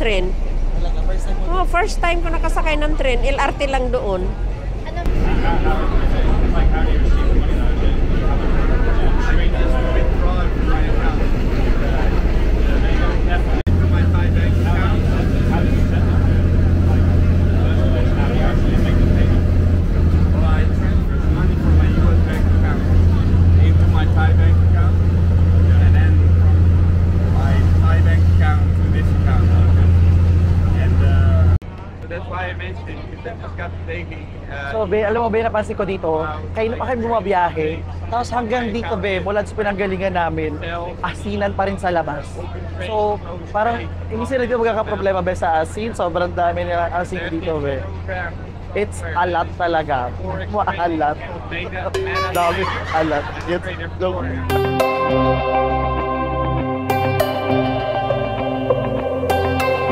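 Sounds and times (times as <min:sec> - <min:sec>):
train rumble: 0:00.0 - 0:31.6
voices: 0:00.0 - 0:59.9.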